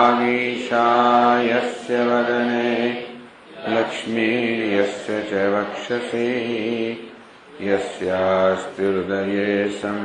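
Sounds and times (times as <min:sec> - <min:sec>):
man chanting verses: 0:00.0 - 0:10.0.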